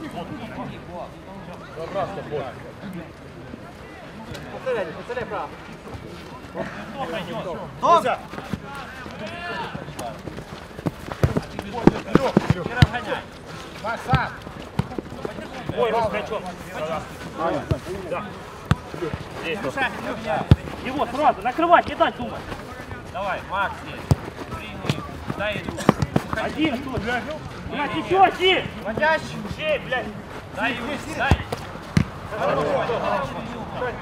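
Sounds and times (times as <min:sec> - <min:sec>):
footballers shouting: 0:06.6 - 0:34.0
football being kicked: 0:10.8 - 0:13.1, 0:14.0 - 0:15.9, 0:17.6 - 0:17.9, 0:18.6 - 0:19.4, 0:20.2 - 0:21.0, 0:23.9 - 0:27.2, 0:31.1 - 0:32.2.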